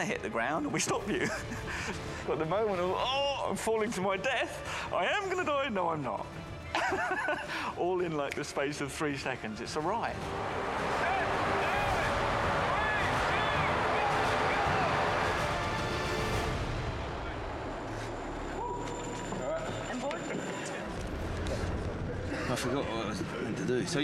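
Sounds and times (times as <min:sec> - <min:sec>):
noisy background: 0:00.0 - 0:24.0
indistinct voices: 0:10.2 - 0:16.2.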